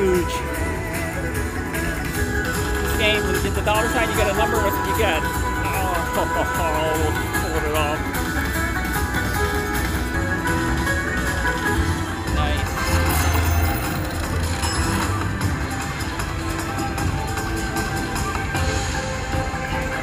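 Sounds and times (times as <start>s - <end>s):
slot machine win music: 1.7s - 17.2s
slot machine chiming effects: 10.3s - 16.1s.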